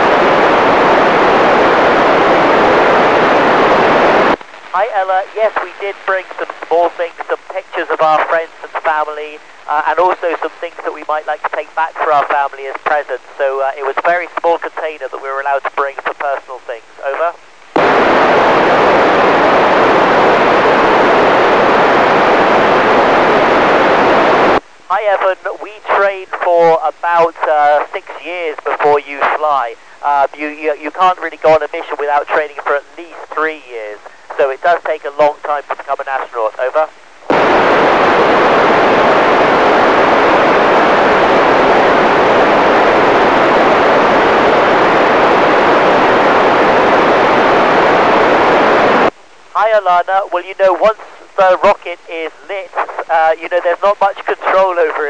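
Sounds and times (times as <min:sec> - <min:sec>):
radio static hiss: 0:00.0 - 0:55.0.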